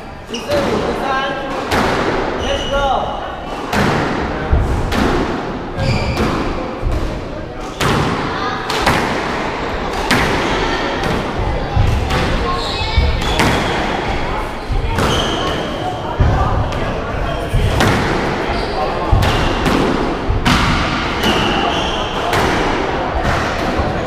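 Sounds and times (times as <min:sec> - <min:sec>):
shoes squeaking on wooden floor: 0:05.8 - 0:06.2, 0:11.8 - 0:15.9.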